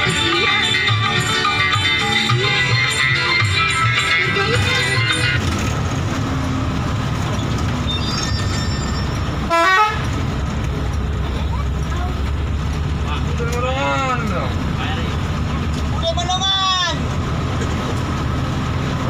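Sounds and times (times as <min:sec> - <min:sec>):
bus engine running: 0:00.0 - 0:19.0
horn toot: 0:09.5 - 0:10.1.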